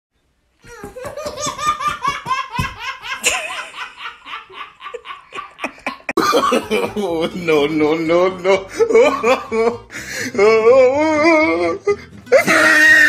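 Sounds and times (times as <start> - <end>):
baby laughing: 0.6 - 7.0.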